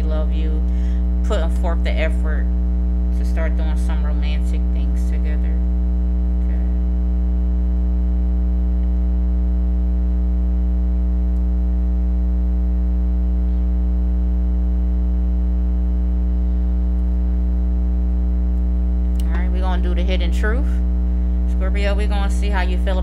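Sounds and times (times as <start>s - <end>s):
electrical mains hum: 0.0s - 23.0s.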